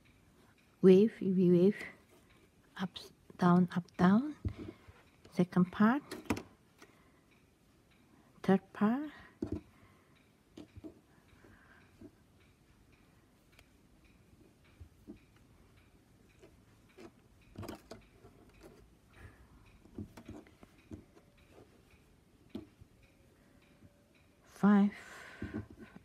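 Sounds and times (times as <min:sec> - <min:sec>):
faint knitting needle clicks: 0:00.0 - 0:26.0.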